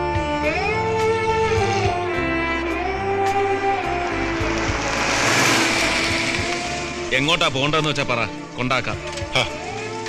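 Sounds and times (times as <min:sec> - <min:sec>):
jeep engine and road noise: 0:00.0 - 0:10.0.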